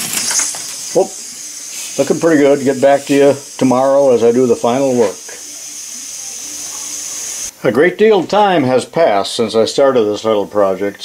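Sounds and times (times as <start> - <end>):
air hissing from model steam engine: 0.0 - 7.6.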